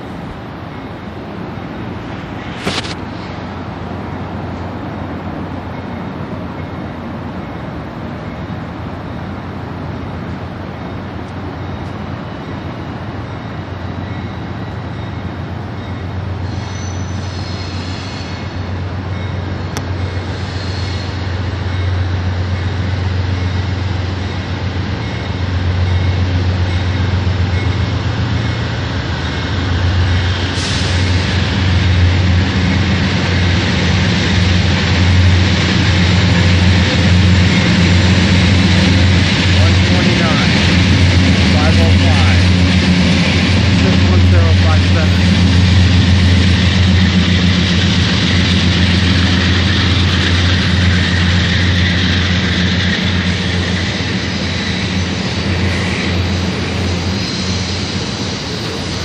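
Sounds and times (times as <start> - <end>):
diesel locomotive engine hum: 0.0 - 59.0
rushing rail noise: 0.0 - 59.0
short hiss: 2.4 - 3.3.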